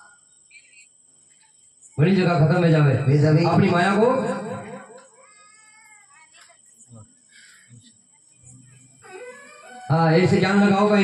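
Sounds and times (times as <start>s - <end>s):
faint steady held tone: 0.0s - 2.5s.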